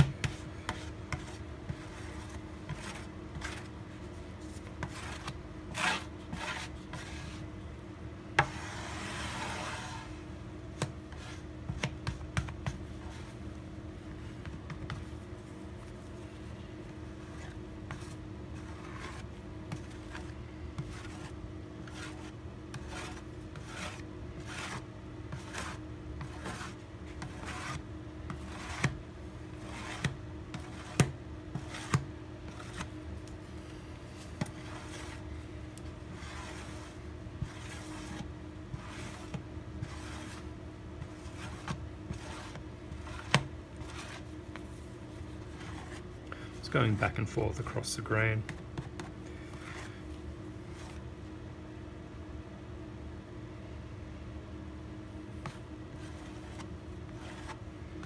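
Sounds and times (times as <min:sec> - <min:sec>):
plastic squeegee scraping wood: 0:08.4 - 0:10.2, 0:17.3 - 0:29.0, 0:29.6 - 0:32.9, 0:34.2 - 0:35.3, 0:36.1 - 0:46.0, 0:55.4 - 0:57.6.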